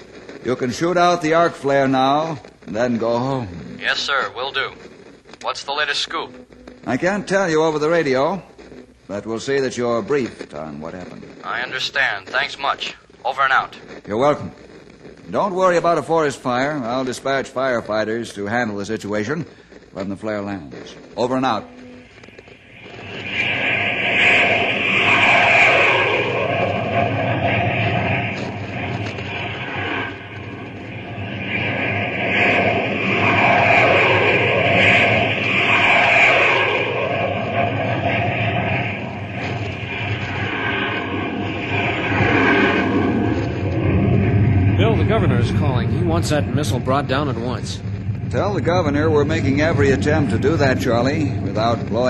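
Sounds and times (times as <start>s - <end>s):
aircraft engines droning: 21.6s - 52.0s.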